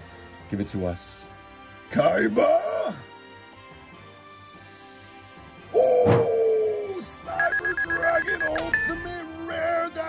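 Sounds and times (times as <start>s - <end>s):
faint background music: 0.0s - 10.0s
rapid high ringing beeps: 7.3s - 9.2s.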